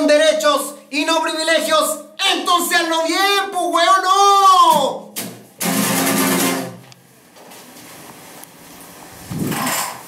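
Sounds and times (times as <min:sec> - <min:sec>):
acoustic guitar strum: 0:05.2 - 0:06.9.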